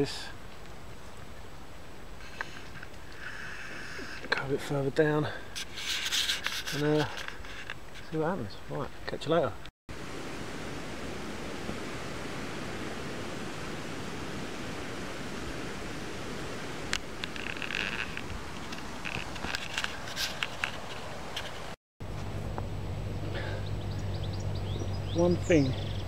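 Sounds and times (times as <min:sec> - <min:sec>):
steady low hum: 0:22.0 - 0:26.0.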